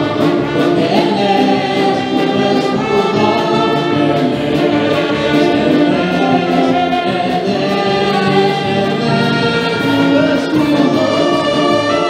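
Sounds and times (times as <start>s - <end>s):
band accompaniment with steady beat: 0.0s - 12.0s
women singing together: 0.0s - 12.0s.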